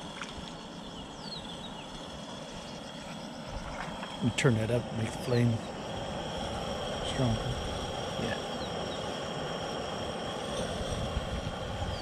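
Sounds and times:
camp stove burner hissing: 0:00.0 - 0:12.0.

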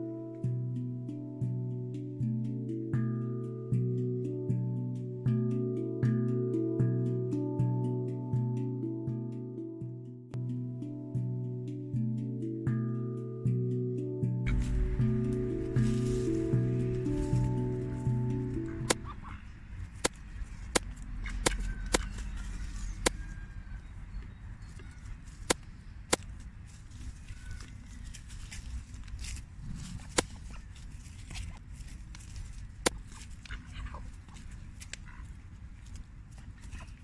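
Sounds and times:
leaves rustling: 0:14.5 - 0:37.0.

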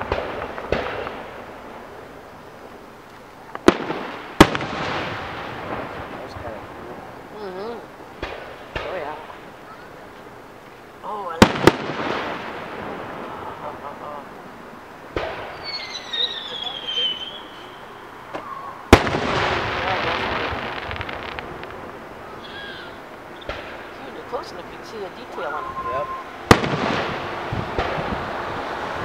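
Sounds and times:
fireworks bursting with echo: 0:00.0 - 0:29.0
falling whistle: 0:15.5 - 0:18.8, 0:25.4 - 0:26.3.

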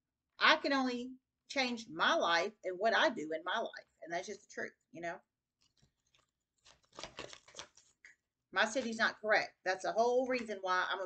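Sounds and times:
cards being shuffled: 0:05.6 - 0:08.0.

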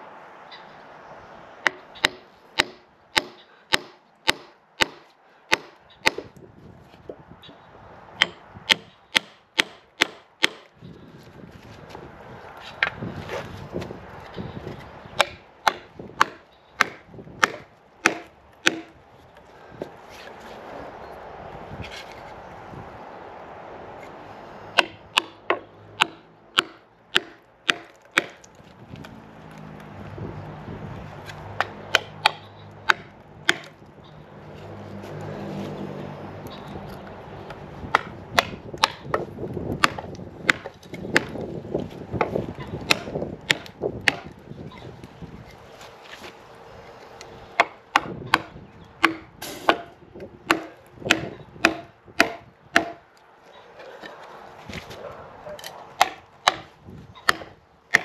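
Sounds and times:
hammer striking wooden wedges: 0:01.6 - 0:06.4, 0:08.2 - 0:10.7, 0:15.2 - 0:19.0, 0:24.8 - 0:28.4, 0:31.6 - 0:33.8, 0:37.9 - 0:39.2, 0:39.8 - 0:41.4, 0:42.2 - 0:44.4, 0:47.6 - 0:53.0, 0:55.6 - 0:58.0.

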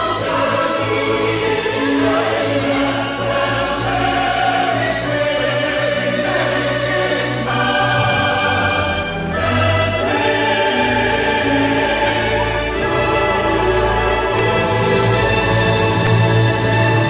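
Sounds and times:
choir singing long held notes: 0:00.0 - 0:17.0
orchestral music: 0:00.0 - 0:17.0.

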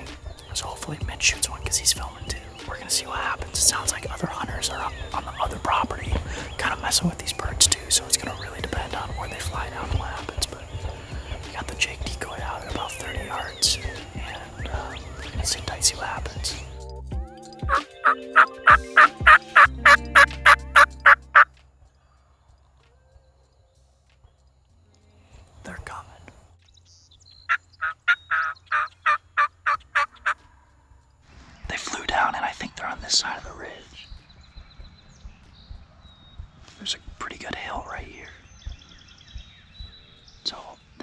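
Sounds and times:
turkey calling: 0:17.6 - 0:21.5, 0:27.4 - 0:30.6
turkey gobble: 0:17.7 - 0:21.5, 0:27.5 - 0:30.4.

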